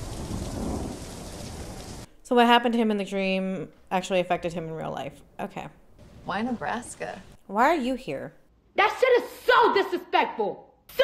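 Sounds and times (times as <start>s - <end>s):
low rumble of thunder: 0.0s - 2.1s
steady rain: 0.0s - 2.1s.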